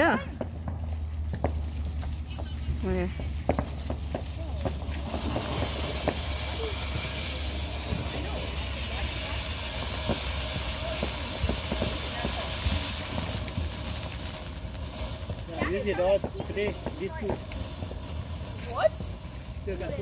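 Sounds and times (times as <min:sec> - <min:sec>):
firework spraying sparks hiss: 0:00.0 - 0:20.0
small firework pops: 0:00.0 - 0:20.0.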